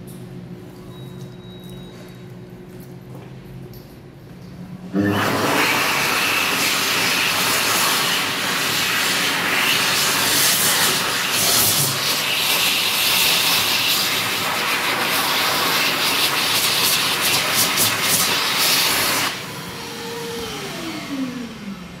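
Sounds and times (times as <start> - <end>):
hand dryer blowing air: 4.9 - 22.0
motor winding down whine: 19.3 - 22.0.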